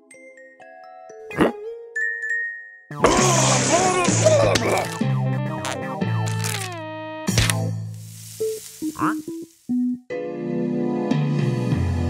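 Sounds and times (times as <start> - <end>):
faint hiss: 7.8 - 9.8.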